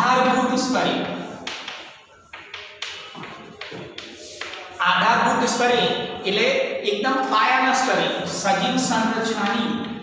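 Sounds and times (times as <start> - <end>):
chalk tapping and scraping on blackboard: 0.2 - 5.6.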